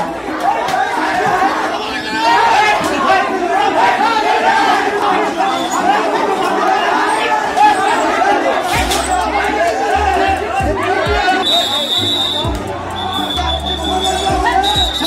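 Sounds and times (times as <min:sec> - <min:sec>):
men shouting and arguing: 0:00.0 - 0:15.0
high steady tone: 0:08.8 - 0:15.0
music with deep bass notes: 0:08.8 - 0:15.0.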